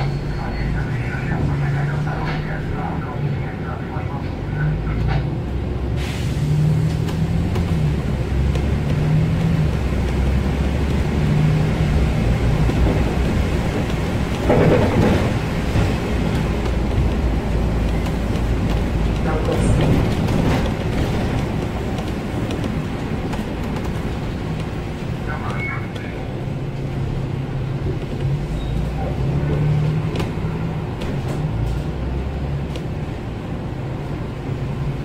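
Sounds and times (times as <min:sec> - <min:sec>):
bus engine droning: 0:00.0 - 0:35.0
road noise: 0:00.0 - 0:35.0.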